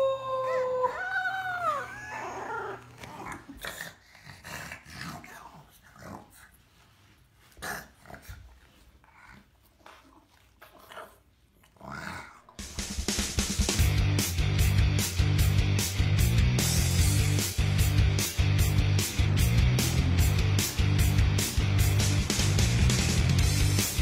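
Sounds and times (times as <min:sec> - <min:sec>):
woman howling: 0:00.0 - 0:02.8.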